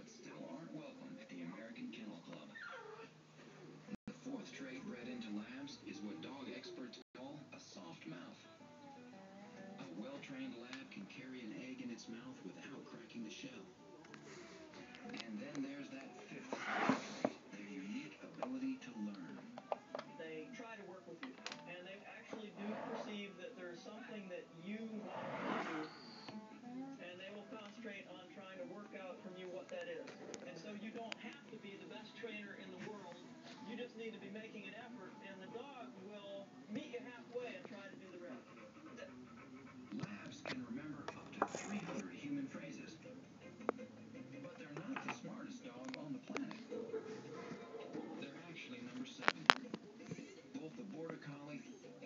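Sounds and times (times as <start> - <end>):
faint background speech: 0.0 - 52.0.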